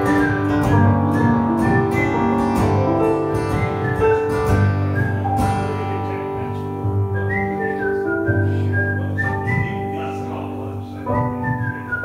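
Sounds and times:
strummed acoustic guitar: 0.0s - 12.0s
sustained keyboard chords: 0.0s - 12.0s
whistled melody: 0.0s - 12.0s.

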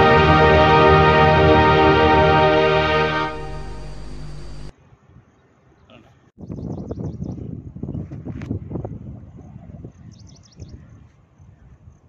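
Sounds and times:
wind noise on microphone: 6.4s - 12.0s.

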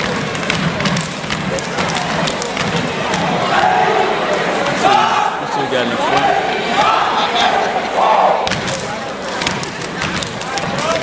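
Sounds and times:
stomps and claps in unison: 0.0s - 3.8s, 6.1s - 7.1s
voices shouting: 3.0s - 8.5s.

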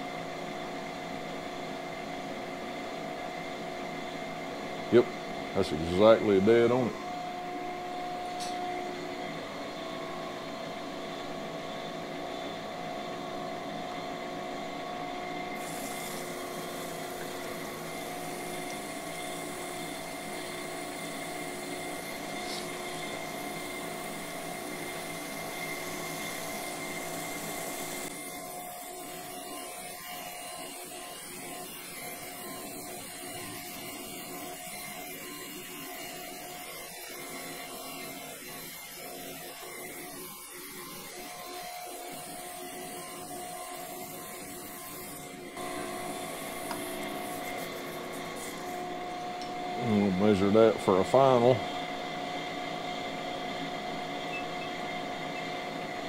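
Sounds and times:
grinding machine motor hum: 4.0s - 56.0s
hiss: 15.6s - 17.4s, 18.1s - 25.1s.

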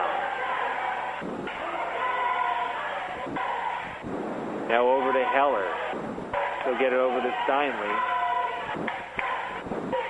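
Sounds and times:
crowd and court noise: 0.0s - 10.0s.

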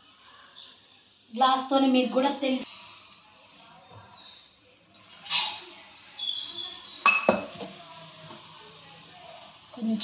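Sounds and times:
sugar pouring with hissing rush: 2.5s - 7.0s.

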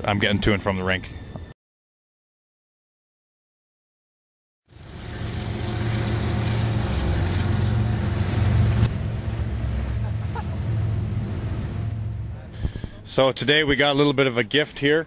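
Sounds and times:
vehicle engine rumbling: 4.7s - 14.6s.

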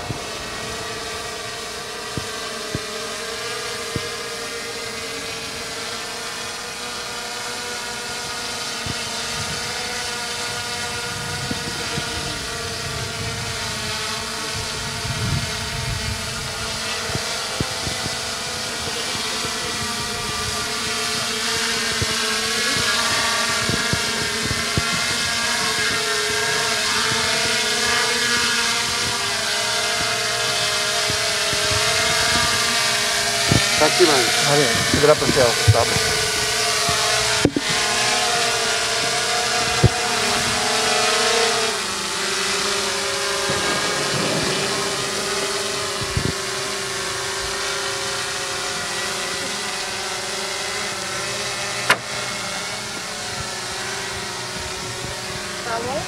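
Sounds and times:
drone propellers whining: 0.0s - 56.0s.

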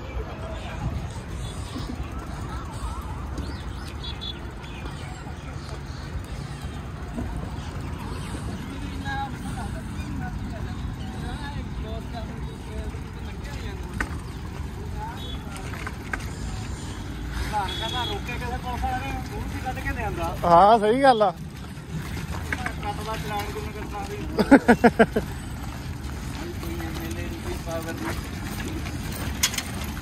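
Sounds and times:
faint voices: 0.0s - 30.0s.

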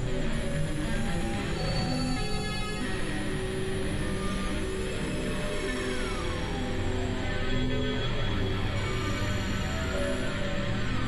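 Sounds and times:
synth drones: 0.0s - 11.0s.

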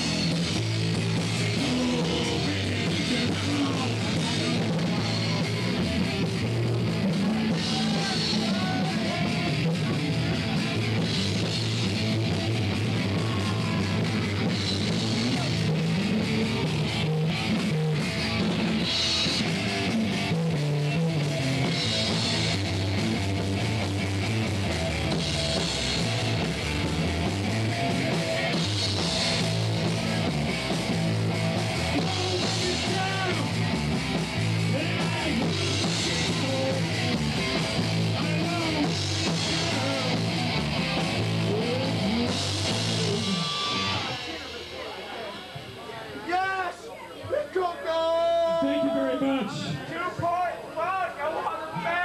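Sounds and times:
faint voices: 0.0s - 23.8s, 24.6s - 52.0s
low bass line: 0.0s - 44.9s
electric guitar: 0.0s - 46.0s
drum kit: 0.0s - 46.5s
rock band playing live: 0.0s - 46.6s.

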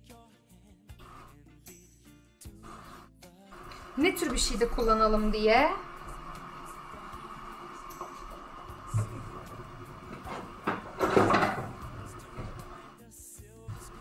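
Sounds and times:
quiet background music: 0.0s - 14.0s
wooden tray clattering and scraping: 8.0s - 12.9s.

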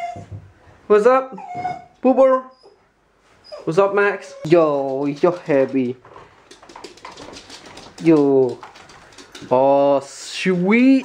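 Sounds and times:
dog claws clicking on tiled floor: 4.5s - 11.0s.

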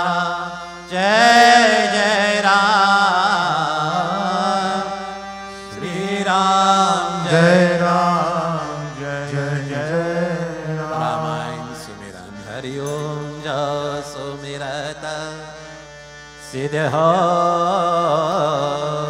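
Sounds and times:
man singing devotional chant: 0.0s - 19.0s.

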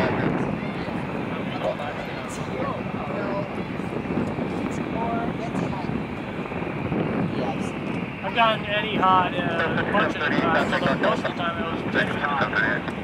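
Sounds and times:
distant jet engines rushing: 0.0s - 13.0s
faint voices: 0.0s - 13.0s.

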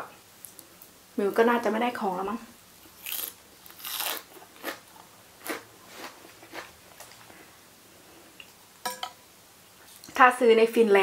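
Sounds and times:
person chewing crunchy salad: 2.9s - 7.4s.

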